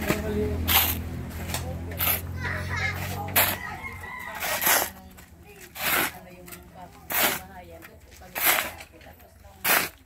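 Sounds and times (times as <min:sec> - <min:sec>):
shovel scraping sand: 0:00.0 - 0:10.0
rooster crowing: 0:03.5 - 0:05.0.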